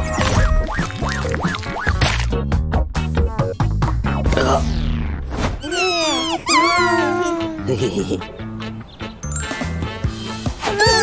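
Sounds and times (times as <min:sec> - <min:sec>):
background music: 0:00.0 - 0:05.4, 0:06.1 - 0:11.0
cartoon voice animal cries: 0:05.6 - 0:07.7, 0:10.7 - 0:11.0.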